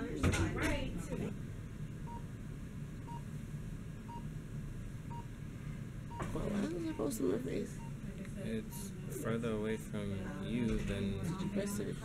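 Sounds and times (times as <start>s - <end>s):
steady low hum: 0.0s - 12.0s
patient monitor beeping: 2.0s - 2.3s, 3.0s - 3.3s, 4.1s - 4.3s, 5.1s - 5.4s, 6.1s - 9.2s, 10.6s - 12.0s.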